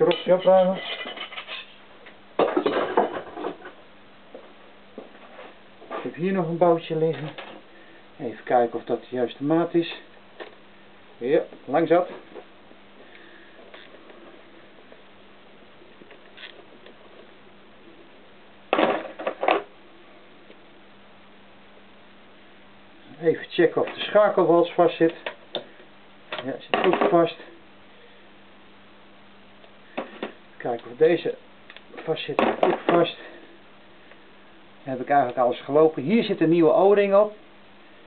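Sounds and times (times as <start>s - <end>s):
metallic clatter of hand tools: 0.1s - 1.8s.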